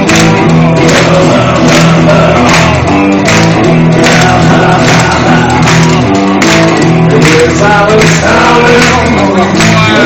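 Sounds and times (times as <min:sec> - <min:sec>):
blues-rock band playing loudly: 0:00.0 - 0:10.0.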